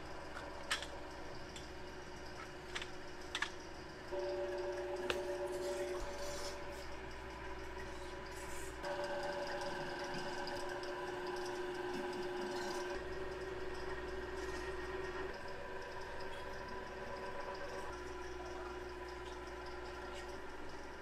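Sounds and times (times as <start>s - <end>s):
extruder motor hum: 0.0s - 21.0s.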